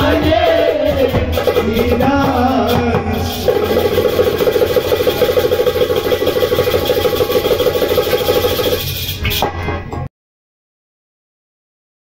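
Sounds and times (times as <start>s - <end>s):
goblet drum roll: 0.0s - 9.7s.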